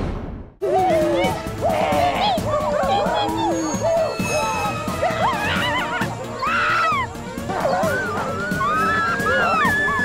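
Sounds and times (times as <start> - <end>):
background music: 0.6 - 10.0
high wavering cries and whoops: 0.6 - 10.0.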